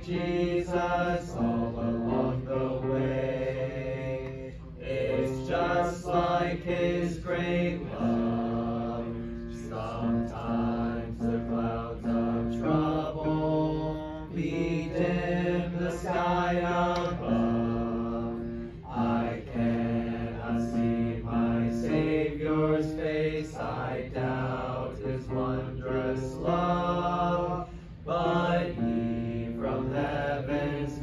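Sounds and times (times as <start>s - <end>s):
congregation singing a hymn: 0.0s - 31.0s.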